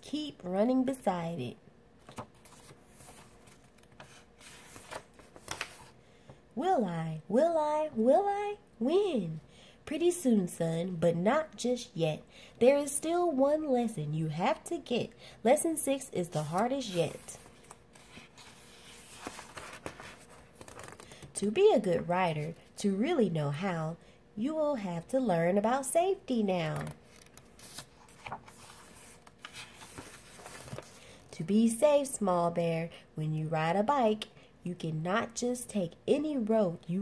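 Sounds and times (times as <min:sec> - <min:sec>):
book page turning: 0:02.0 - 0:06.0, 0:16.3 - 0:21.3, 0:26.8 - 0:31.1.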